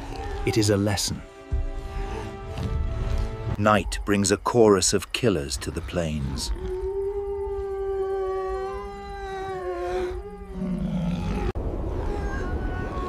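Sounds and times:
wild animal howling: 5.9s - 13.0s.

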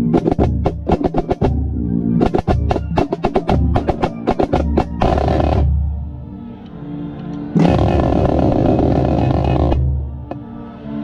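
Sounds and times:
band sustained low notes: 0.0s - 10.7s.

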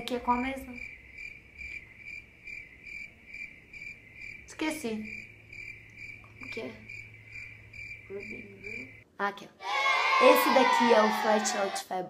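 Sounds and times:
insect trilling: 0.4s - 9.0s.

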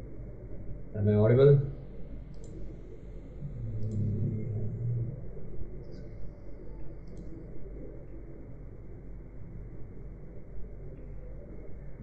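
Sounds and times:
low hum: 0.0s - 12.0s
computer mouse clicks: 2.3s - 2.7s, 3.7s - 4.1s, 7.0s - 7.5s.

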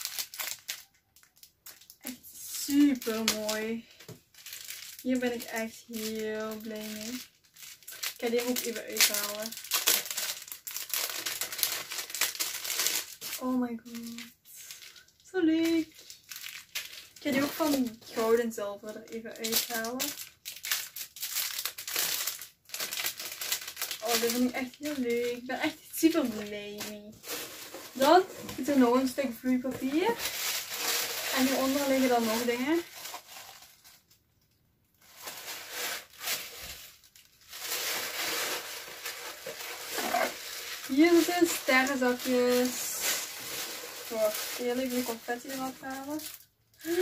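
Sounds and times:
plastic bag of beads crinkling: 0.0s - 47.0s.

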